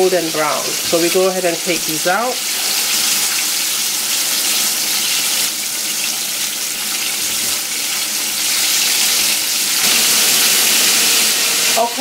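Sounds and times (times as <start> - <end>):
oil sizzling while deep-frying: 0.0 - 12.0.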